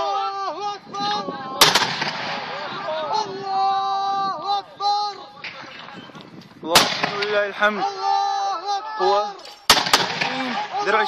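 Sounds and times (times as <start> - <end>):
mortar firing bang: 1.6 - 2.6, 6.7 - 7.5, 9.7 - 10.6.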